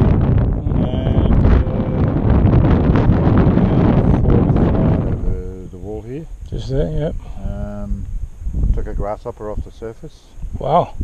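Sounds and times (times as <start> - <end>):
wind buffeting microphone: 0.0 - 11.0
faint voice: 0.6 - 2.2.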